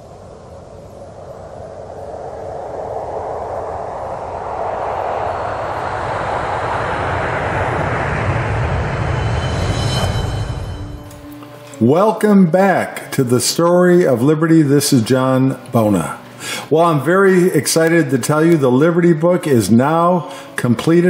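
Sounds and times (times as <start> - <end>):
rushing noise with low rumble: 0.0 - 11.5.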